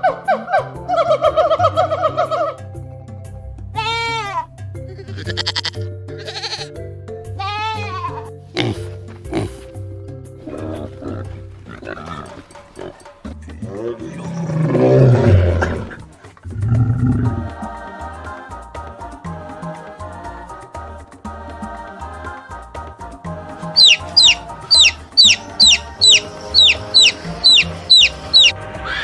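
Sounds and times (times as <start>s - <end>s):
background music with bass line: 0.0s - 29.0s
chimpanzee calls: 3.8s - 6.7s, 23.8s - 29.0s
pig calls: 4.9s - 6.7s, 8.6s - 9.7s, 23.8s - 29.0s
loud low-pitched animal call: 23.8s - 29.0s.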